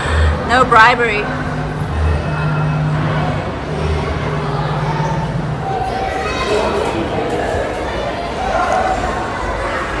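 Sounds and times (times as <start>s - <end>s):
indoor hall background hum: 0.0s - 10.0s.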